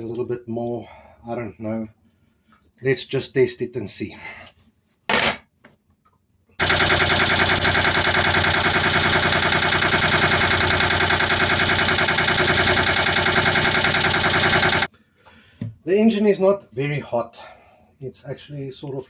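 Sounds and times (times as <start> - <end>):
diesel engine idling: 6.6 - 14.9.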